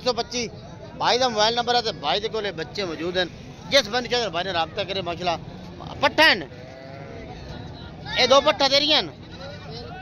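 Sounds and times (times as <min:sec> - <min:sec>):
goat bleating: 0:06.5 - 0:07.3.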